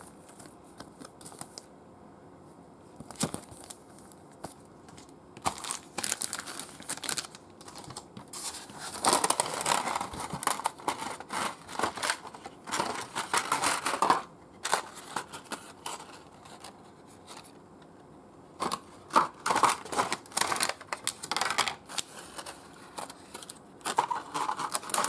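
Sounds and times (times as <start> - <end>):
plastic packaging crinkling: 3.0 - 17.6, 18.6 - 25.0.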